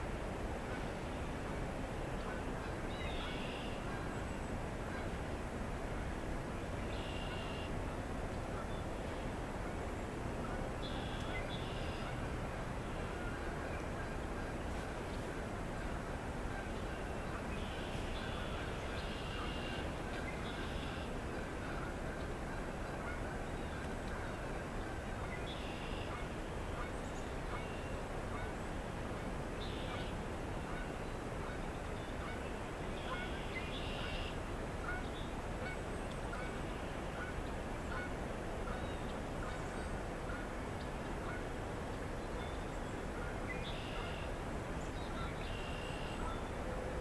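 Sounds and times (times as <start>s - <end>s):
outdoor background noise: 0.0s - 47.0s
distant bird calls: 2.2s - 5.2s, 6.0s - 9.8s, 10.4s - 28.9s, 29.6s - 47.0s.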